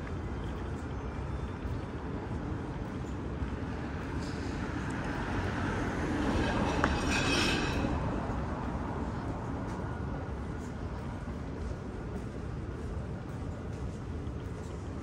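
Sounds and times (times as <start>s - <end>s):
city street traffic rumble: 0.0s - 15.0s.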